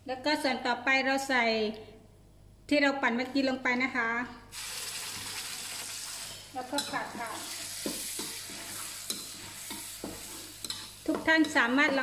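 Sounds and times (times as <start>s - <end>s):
spice paste sizzling in hot oil: 4.5s - 12.0s.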